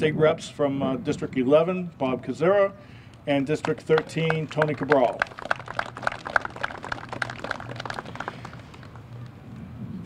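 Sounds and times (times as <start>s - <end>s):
light scattered applause: 3.6s - 9.2s.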